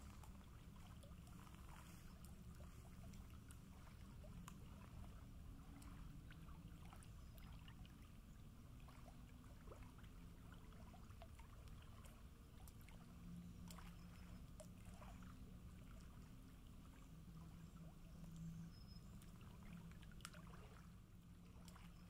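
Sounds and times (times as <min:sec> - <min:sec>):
low steady rumble: 0:00.0 - 0:22.0
small waves lapping: 0:00.0 - 0:22.0
soft splashes: 0:00.0 - 0:22.0.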